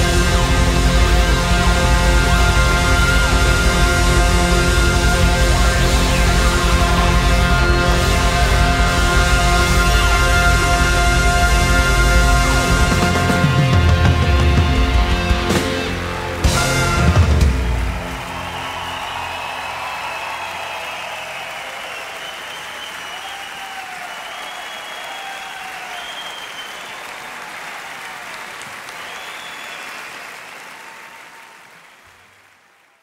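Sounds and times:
audience applause and cheering: 0:00.0 - 0:33.0
shouts from audience: 0:16.4 - 0:33.0.

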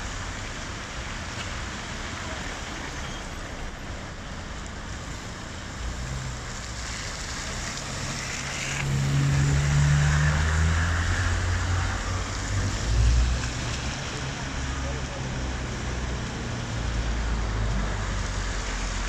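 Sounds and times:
steady rain: 0:00.0 - 0:19.0
tyres hissing on wet road: 0:00.0 - 0:19.0.

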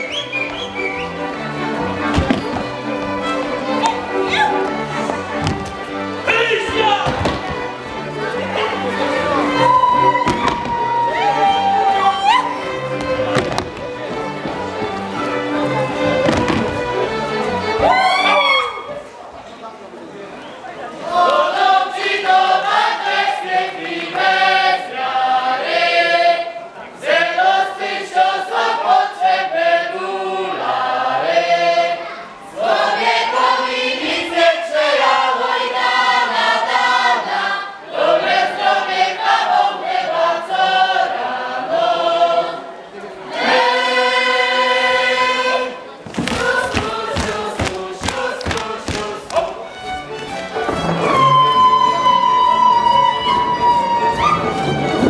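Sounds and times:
group singing unaccompanied folk song: 0:21.0 - 0:55.0.

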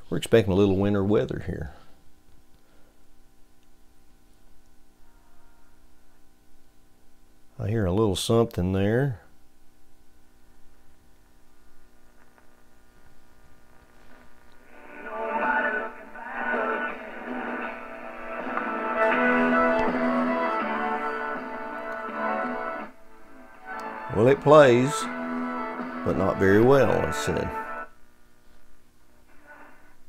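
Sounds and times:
music from old radio speaker: 0:12.2 - 0:28.7, 0:29.3 - 0:30.0.

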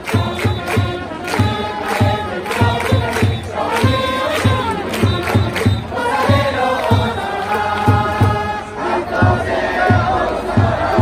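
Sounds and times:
crowd chanting in unison: 0:00.0 - 0:11.0
bass drum beating: 0:00.1 - 0:07.2, 0:07.8 - 0:11.0.

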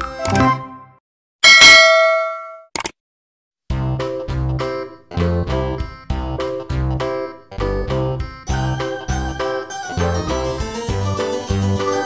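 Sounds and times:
background music: 0:00.0 - 0:01.0, 0:03.7 - 0:12.0
bell-like ding: 0:01.4 - 0:02.7.

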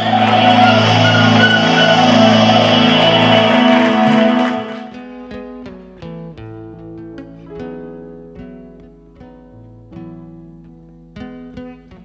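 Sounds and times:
loud held chord: 0:00.0 - 0:05.1.

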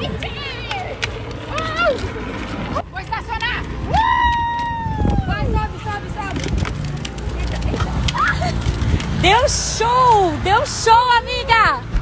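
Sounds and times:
plastic wheels rumbling on pavement: 0:00.0 - 0:12.0.

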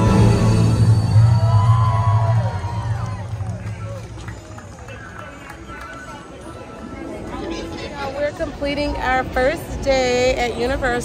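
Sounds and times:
soundtrack music with deep bass: 0:00.0 - 0:04.2
spectators' voices: 0:00.0 - 0:11.0.

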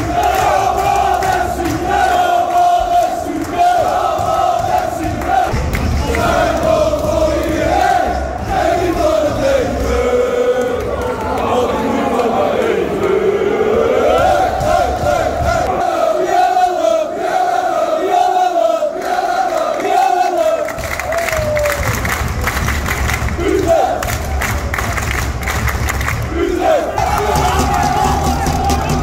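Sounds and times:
football crowd chanting: 0:00.0 - 0:21.2, 0:23.0 - 0:24.7, 0:26.0 - 0:29.0
rough crowd noise: 0:00.0 - 0:29.0.

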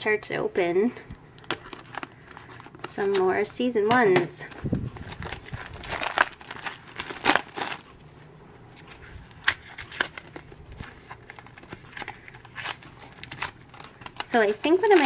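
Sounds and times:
plastic wrapper crinkling and tearing: 0:01.4 - 0:03.3, 0:04.5 - 0:07.9, 0:09.2 - 0:15.0.

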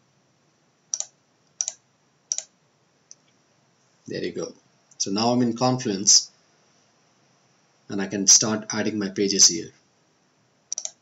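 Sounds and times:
computer mouse button clicks: 0:00.9 - 0:02.5, 0:10.7 - 0:11.0.

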